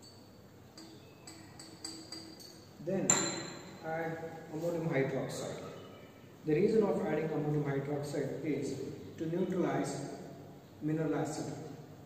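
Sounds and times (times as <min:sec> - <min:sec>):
glass pipette clinking on flask: 0:00.0 - 0:03.8.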